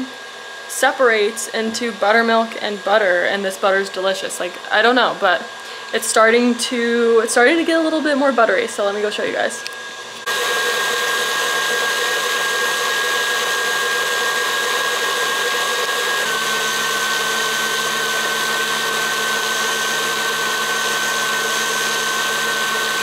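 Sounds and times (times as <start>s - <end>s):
stand mixer motor whining: 0.0s - 23.0s.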